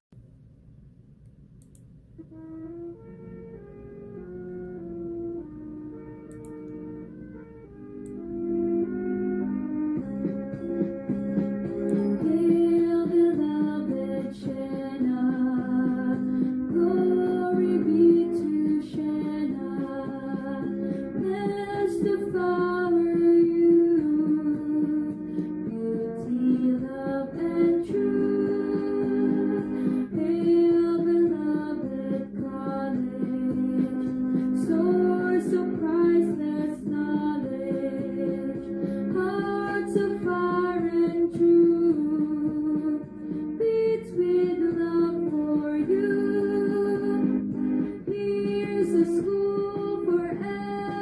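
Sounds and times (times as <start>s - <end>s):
instrumental accompaniment: 1.7s - 51.0s.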